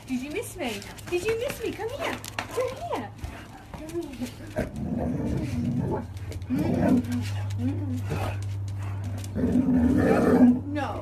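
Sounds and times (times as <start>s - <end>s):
huskies vocalizing: 2.5s - 10.9s.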